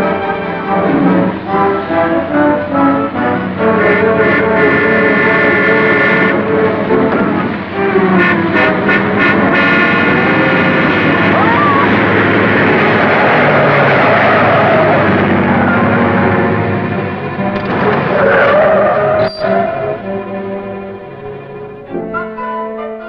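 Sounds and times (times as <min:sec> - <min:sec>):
car engine: 0:00.0 - 0:22.1
dramatic orchestral music: 0:00.0 - 0:23.0
road noise: 0:00.0 - 0:23.0.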